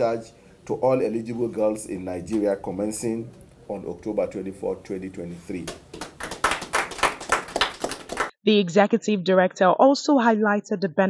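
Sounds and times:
people clapping: 0:05.0 - 0:08.3.

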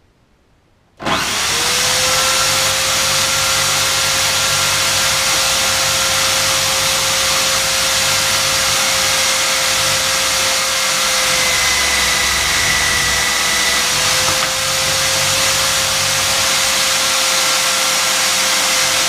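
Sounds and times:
buffing wheel humming and whirring: 0:01.0 - 0:19.0.

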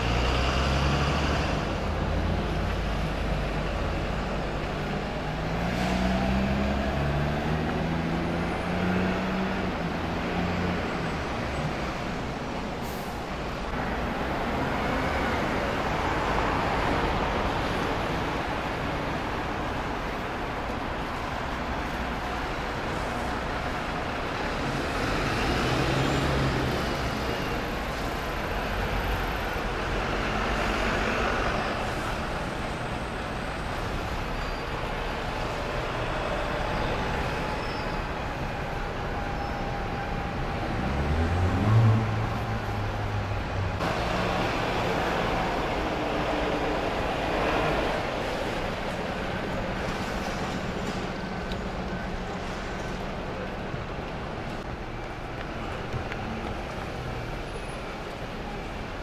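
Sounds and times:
diesel buses pulling away: 0:00.0 - 0:59.0
traffic noise: 0:00.0 - 0:59.0.

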